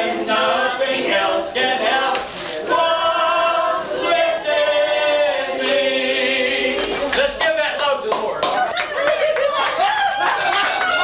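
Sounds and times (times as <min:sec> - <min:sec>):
people clapping: 0:06.5 - 0:11.0.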